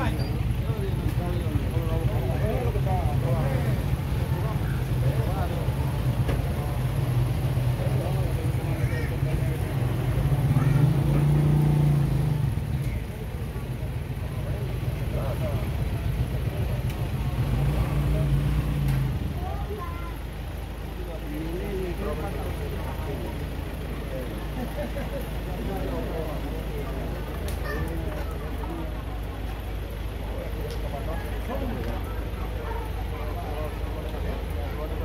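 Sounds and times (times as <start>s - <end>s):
faint voices: 0.0s - 35.0s
vehicle engine humming: 0.0s - 35.0s.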